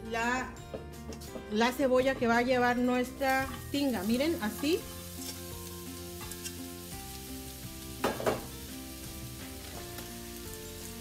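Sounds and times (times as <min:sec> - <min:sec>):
soft background music: 0:00.0 - 0:11.0
onions sizzling in oil: 0:03.1 - 0:11.0
onion clattering into pan: 0:07.9 - 0:08.6.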